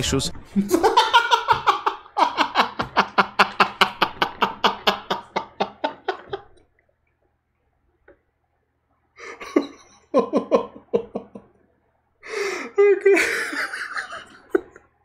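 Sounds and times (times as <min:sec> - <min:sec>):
man laughing hard: 0:00.6 - 0:06.6, 0:09.2 - 0:11.5, 0:12.8 - 0:14.8.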